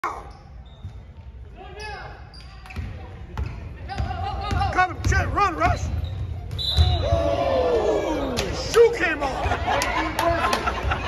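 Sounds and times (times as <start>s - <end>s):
voices of players and spectators: 0.0s - 11.0s.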